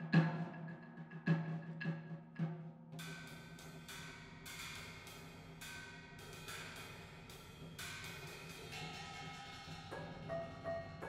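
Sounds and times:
sticks striking pitched percussion: 0:08.0 - 0:11.0.

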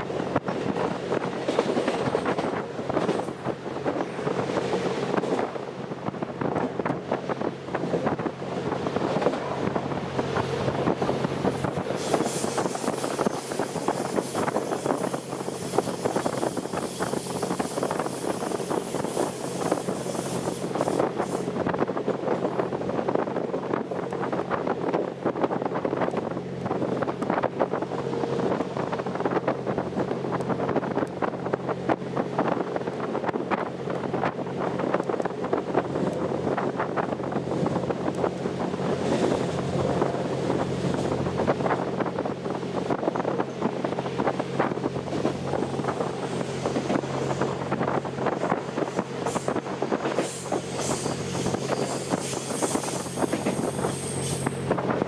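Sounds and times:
train running noise: 0:00.0 - 0:55.0
wind buffeting microphone: 0:00.0 - 0:55.0.

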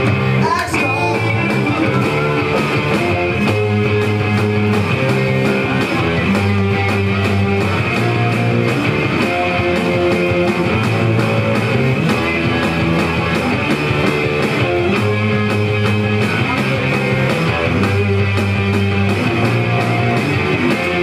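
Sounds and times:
electric guitar in punk rock song: 0:00.0 - 0:21.0.

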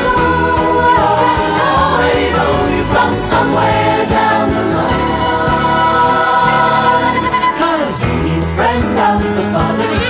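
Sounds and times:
gospel group singing in harmony: 0:00.0 - 0:10.0
instrumental backing: 0:00.0 - 0:10.0.

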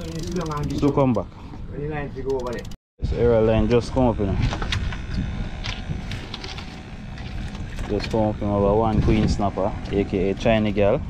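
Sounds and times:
boat engine running: 0:03.6 - 0:11.0.

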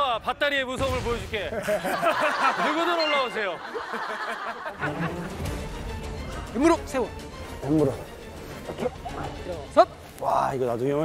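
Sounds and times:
faint background music: 0:04.7 - 0:11.0.

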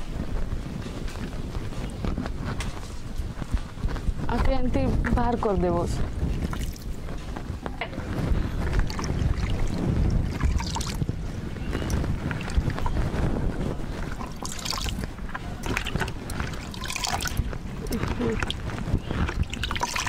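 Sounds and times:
wind rumbling on microphone: 0:00.0 - 0:20.0
leaves rustling in plastic buckets: 0:11.7 - 0:20.0.

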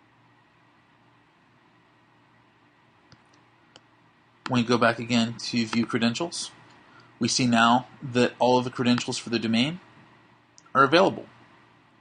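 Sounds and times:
faint room hiss: 0:00.0 - 0:12.0
computer mouse clicks: 0:03.1 - 0:04.6.

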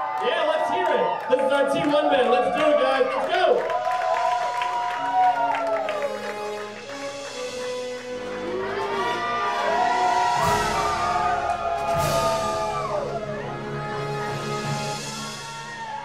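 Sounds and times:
crowd cheering and whooping: 0:00.0 - 0:13.8, 0:14.8 - 0:16.0
keyboard sustained chords: 0:05.6 - 0:16.0.

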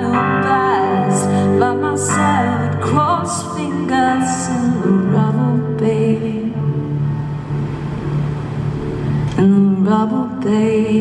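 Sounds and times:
held low instrumental note: 0:06.8 - 0:09.4.

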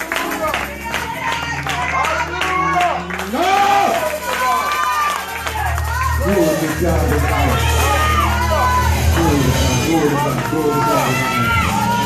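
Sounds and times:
people praying aloud: 0:00.4 - 0:12.0.

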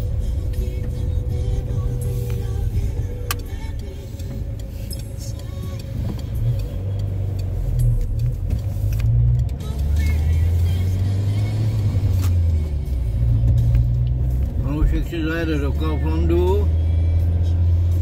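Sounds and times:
car engine from inside cabin: 0:00.0 - 0:18.0
road noise: 0:00.0 - 0:18.0.

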